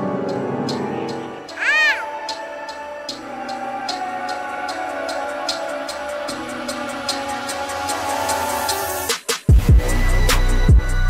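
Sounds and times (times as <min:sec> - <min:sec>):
background music with ticking beat: 0:00.0 - 0:11.0
squeaky meow-like cry effect: 0:01.5 - 0:02.2.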